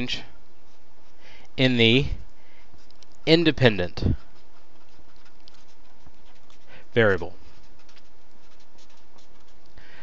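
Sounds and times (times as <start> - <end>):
steady background hiss: 0.0 - 10.0
marker pen scratching on paper: 2.2 - 9.8.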